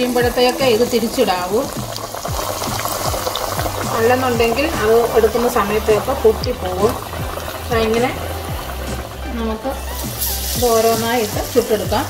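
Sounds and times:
background music with low beat: 0.0s - 12.0s
fritters deep-frying in hot oil: 0.0s - 12.0s.

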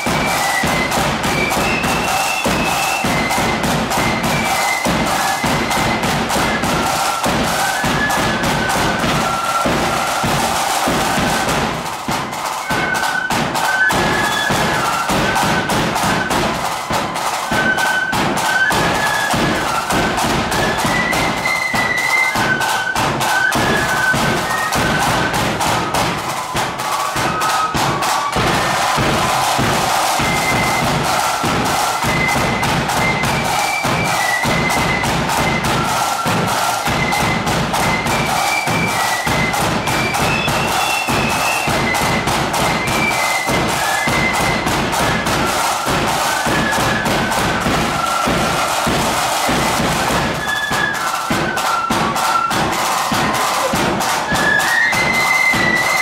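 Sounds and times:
flutes playing in unison: 0.0s - 56.0s
rapid snare drum strokes: 0.0s - 56.0s.

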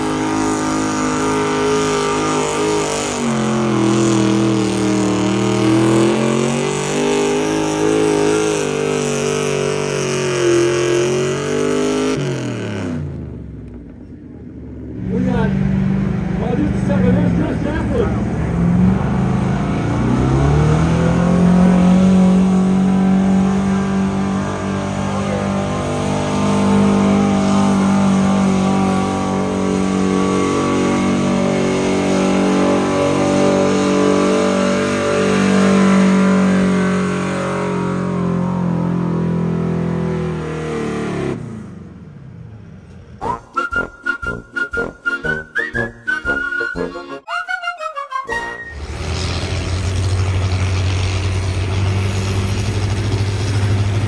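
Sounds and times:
truck engine at full throttle: 0.0s - 47.3s, 48.3s - 54.0s.

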